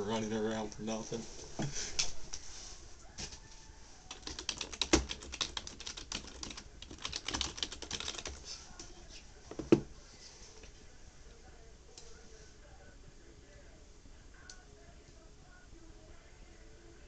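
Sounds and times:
computer keyboard typing: 4.1s - 8.4s.

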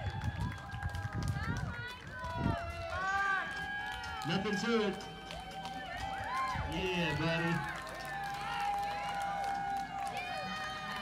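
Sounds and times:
spectators cheering and shouting: 0.0s - 11.0s.

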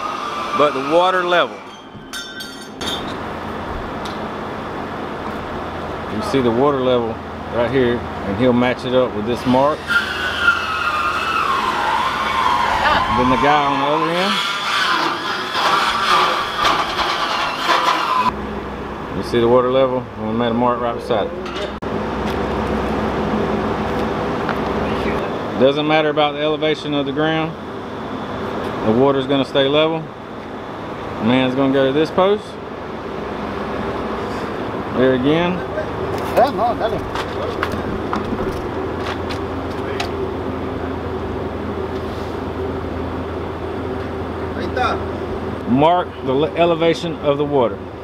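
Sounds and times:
low mechanical hum: 0.0s - 48.0s.

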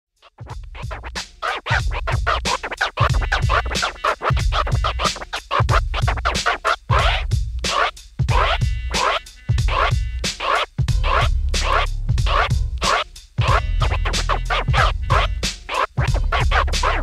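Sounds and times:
turntable scratching: 0.2s - 17.0s
deep bass line: 7.0s - 17.0s.

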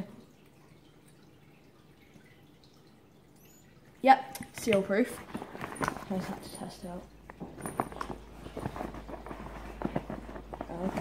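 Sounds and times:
low steady hum: 0.0s - 11.0s
bag flap knocks and rustles: 5.2s - 6.7s, 7.3s - 11.0s.

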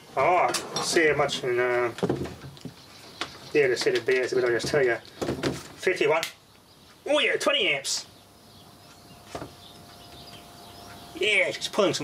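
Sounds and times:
faint bird chirps: 6.4s - 12.0s.

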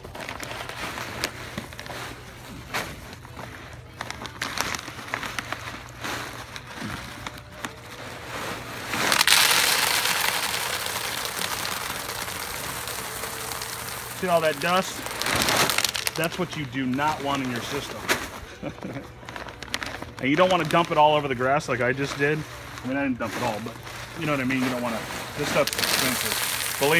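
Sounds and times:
plastic bag crackling: 0.0s - 26.9s
clay pebbles pouring into tub: 8.9s - 18.0s, 19.5s - 26.9s.

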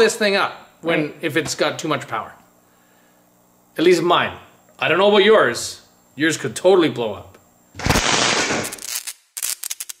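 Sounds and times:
explosion burst: 7.8s - 8.8s
sharp crackling pops: 7.8s - 10.0s.

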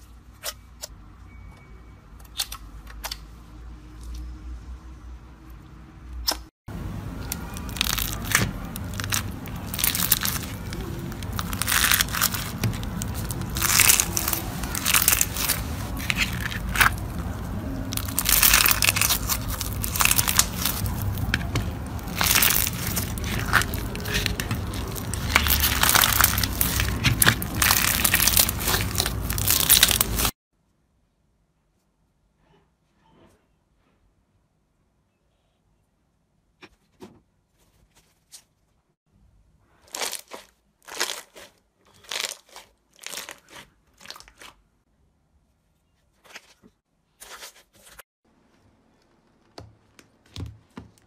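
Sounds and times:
slime squeezed by fingers crackling: 7.1s - 30.3s, 39.9s - 44.6s.

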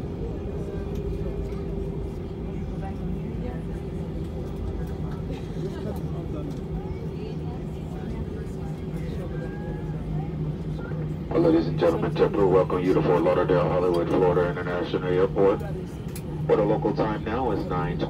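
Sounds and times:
aircraft cabin engine hum: 0.0s - 18.0s.

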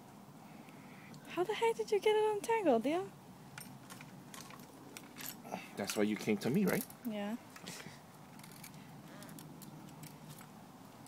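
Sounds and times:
chainsaw chain clicking: 8.3s - 10.5s.

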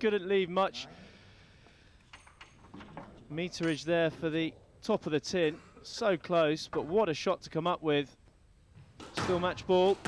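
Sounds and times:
faint indoor arena hum: 0.0s - 10.0s.

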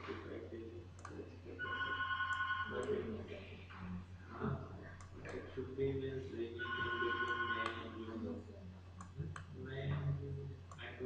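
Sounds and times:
faint muffled voices: 0.0s - 11.0s
low electrical hum: 0.0s - 11.0s
electronic ringing tone: 1.6s - 2.9s, 6.6s - 7.7s.

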